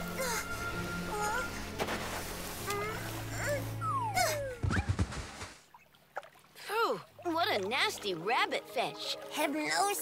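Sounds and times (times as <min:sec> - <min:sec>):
cartoon whimpering and whining: 0:02.7 - 0:04.9
thumps on the ground: 0:04.6 - 0:05.6.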